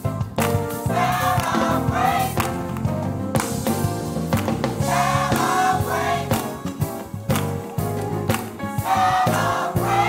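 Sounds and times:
instrumental accompaniment: 0:00.0 - 0:10.0
gospel choir singing: 0:00.8 - 0:02.8, 0:04.6 - 0:10.0.

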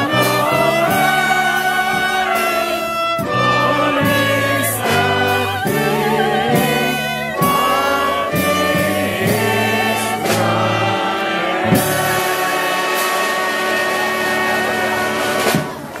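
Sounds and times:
crowd singing a carol: 0:00.0 - 0:16.0.

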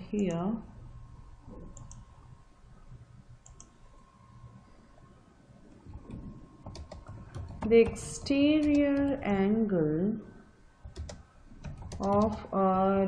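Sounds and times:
low steady hum: 0:00.0 - 0:13.0
keyboard typing: 0:01.6 - 0:02.1, 0:03.4 - 0:03.8, 0:05.9 - 0:09.2, 0:10.8 - 0:12.5.

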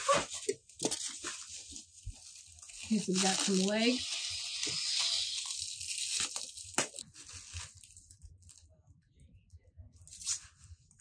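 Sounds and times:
plastic packaging crinkling and tearing: 0:00.0 - 0:08.7, 0:10.0 - 0:10.7.

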